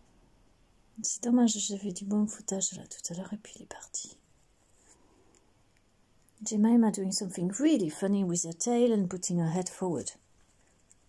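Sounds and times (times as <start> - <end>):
woman speaking softly: 1.0 - 4.2, 6.4 - 10.2.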